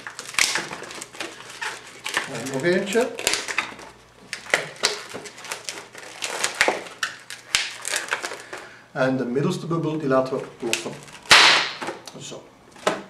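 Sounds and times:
balloons squeaking and creaking: 0:00.0 - 0:08.6.

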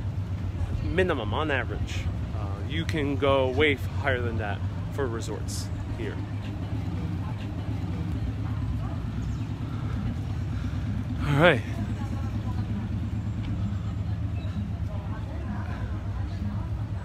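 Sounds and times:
low rumble of traffic: 0:00.0 - 0:17.0
man speaking: 0:00.9 - 0:06.3, 0:11.2 - 0:11.8.

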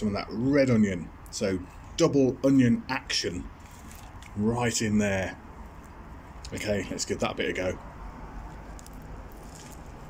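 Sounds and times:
steady background noise: 0:00.0 - 0:10.0
chewing with soft crunches: 0:03.6 - 0:04.4, 0:05.6 - 0:06.7, 0:08.2 - 0:10.0.

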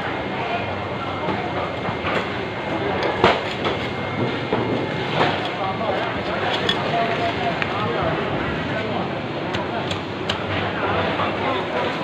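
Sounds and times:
market background noise: 0:00.0 - 0:12.0.

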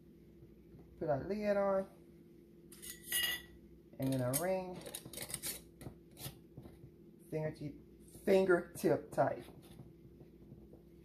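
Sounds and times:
metal lid scraping jar threads: 0:04.0 - 0:05.6.

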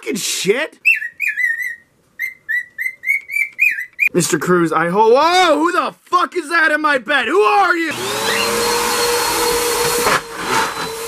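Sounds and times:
cockatiel whistling: 0:00.8 - 0:04.1, 0:08.2 - 0:08.6.

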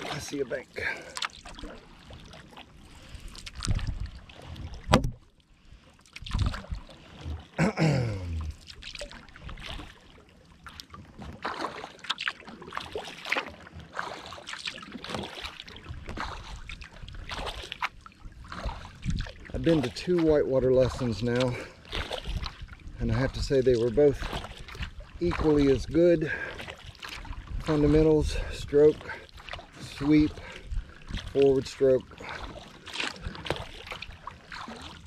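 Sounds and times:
paddle splashing in water: 0:00.0 - 0:35.0.

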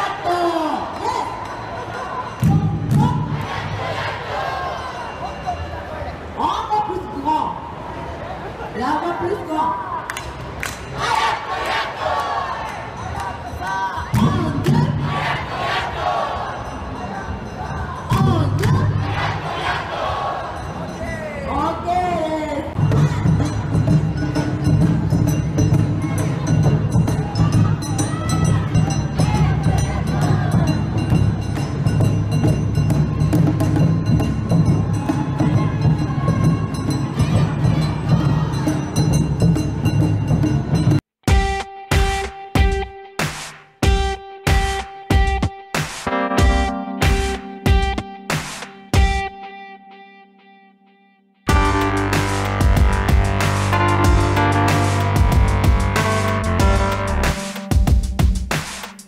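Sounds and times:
crowd shouting rhythmic chanted calls: 0:00.0 - 0:05.4, 0:10.9 - 0:17.9, 0:18.6 - 0:21.0, 0:26.0 - 0:31.3, 0:34.8 - 0:39.0
clanging percussion strikes: 0:22.7 - 0:49.3, 0:51.5 - 0:59.0
taiko drums: 0:22.8 - 0:49.2, 0:51.5 - 0:58.8.

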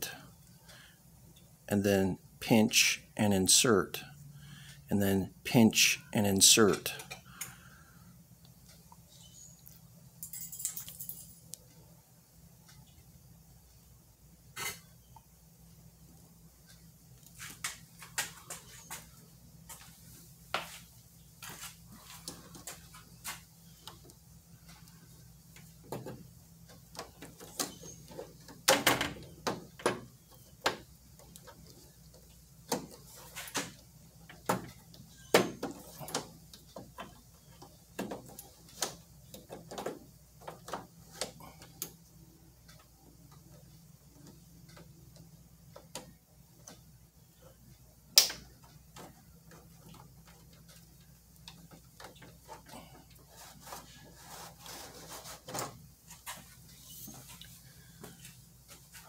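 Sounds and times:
light rubbing of rubber: 0:52.2 - 0:59.0.

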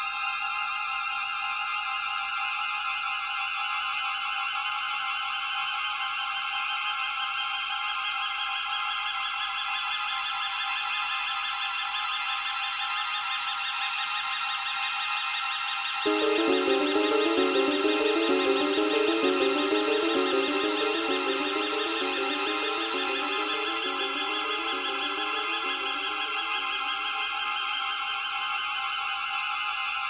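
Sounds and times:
electronic film score music: 0:16.1 - 0:27.7.

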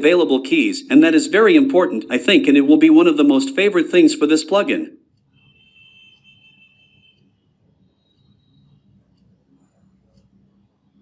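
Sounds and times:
faint high steady whine: 0:04.9 - 0:11.0.

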